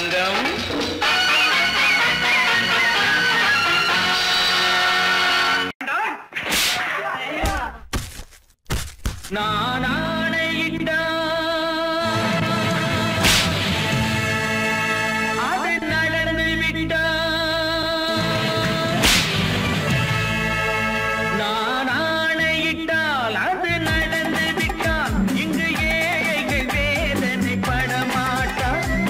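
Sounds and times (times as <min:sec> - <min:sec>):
sudden sharp crack: 0:06.4 - 0:09.4, 0:13.2 - 0:13.9, 0:19.0 - 0:19.8
punch thuds: 0:07.4 - 0:09.4, 0:19.0 - 0:19.5
swish of a blow: 0:13.2 - 0:13.7, 0:19.0 - 0:19.5
orchestra playing: 0:13.6 - 0:15.6.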